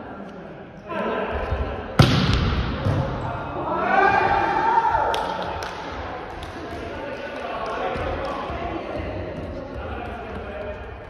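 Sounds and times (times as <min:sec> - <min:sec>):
players' voices in gymnasium: 0:00.0 - 0:11.0.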